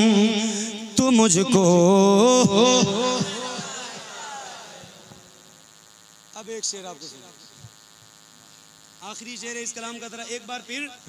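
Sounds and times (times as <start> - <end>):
electrical hum and hiss: 0.0 - 11.0
man's voice through loudspeakers: 0.4 - 3.5, 9.0 - 11.0.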